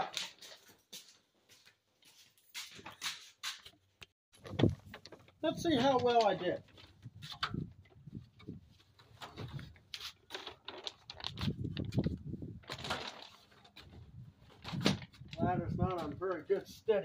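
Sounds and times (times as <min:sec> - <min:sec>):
footsteps: 0:00.0 - 0:03.8
plastic sheet rustling: 0:04.4 - 0:16.7.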